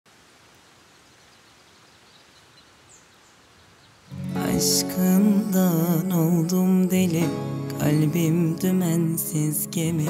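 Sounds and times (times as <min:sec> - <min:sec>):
bird chirps: 0:01.1 - 0:04.2.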